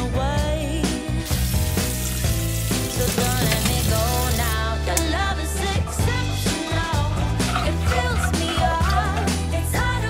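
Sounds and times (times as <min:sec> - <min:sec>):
background music: 0:00.0 - 0:10.0
tap water splashing into saucepan: 0:01.5 - 0:04.6.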